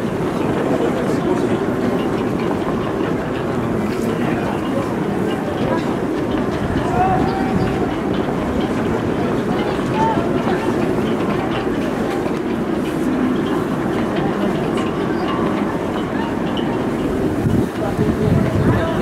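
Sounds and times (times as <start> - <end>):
crowd voices din: 0.0 - 19.0.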